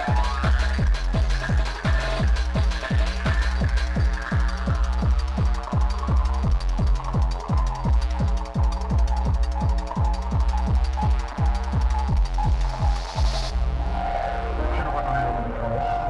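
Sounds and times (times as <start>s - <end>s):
fast kick drum: 0.0s - 13.5s
droning bass: 0.0s - 16.0s.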